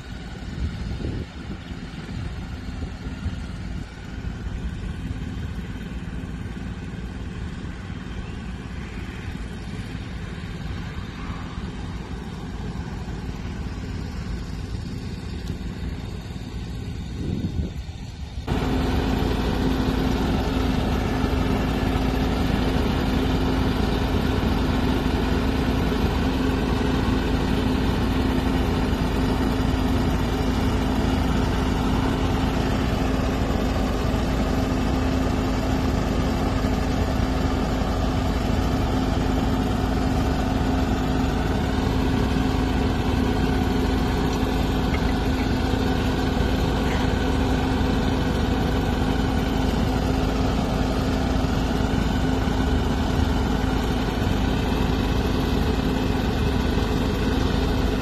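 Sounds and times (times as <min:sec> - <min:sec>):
drilling rig engine humming: 0:00.0 - 0:58.0.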